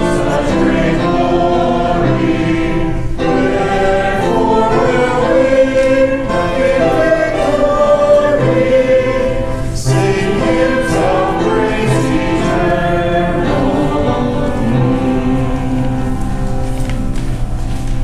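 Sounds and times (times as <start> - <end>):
choir and congregation singing a hymn: 0.0 - 17.8.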